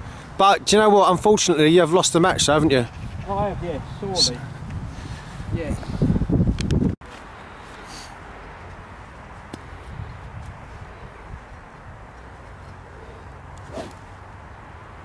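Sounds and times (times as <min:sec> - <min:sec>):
faint outdoor hiss: 0:00.0 - 0:15.0
men's voices: 0:00.4 - 0:06.0.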